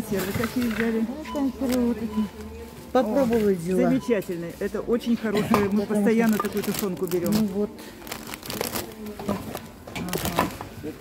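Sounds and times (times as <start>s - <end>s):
plastic packaging rustling: 5.5s - 10.9s.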